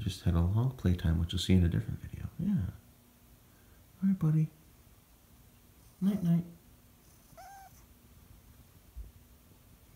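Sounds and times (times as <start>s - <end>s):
cat mewing quietly: 7.1s - 7.9s.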